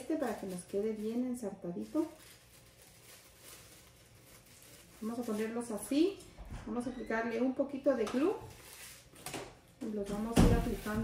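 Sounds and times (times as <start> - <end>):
tissue paper rustling: 0.0 - 6.1, 8.5 - 9.2, 10.6 - 11.0.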